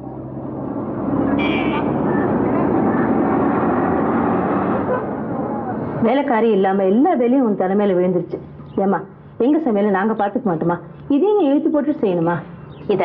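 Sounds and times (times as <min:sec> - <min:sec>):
city street traffic: 0:00.0 - 0:13.0
high-pitched horn toot: 0:01.4 - 0:02.0.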